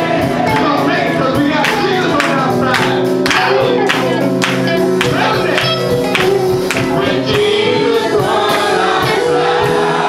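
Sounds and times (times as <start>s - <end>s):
choir of voices singing: 0.0s - 10.0s
keyboard and band accompaniment: 0.0s - 10.0s.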